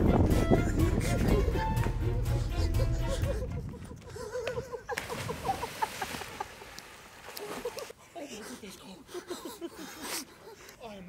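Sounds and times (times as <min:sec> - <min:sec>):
splash into water: 0:04.9 - 0:07.9
water washing: 0:04.9 - 0:08.0.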